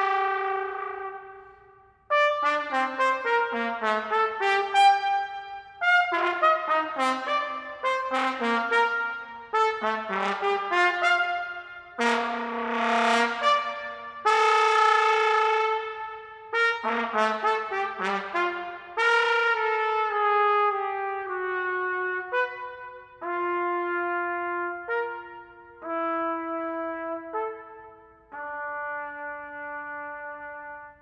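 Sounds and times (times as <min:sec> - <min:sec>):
solo trumpet melody: 0:00.0 - 0:31.0.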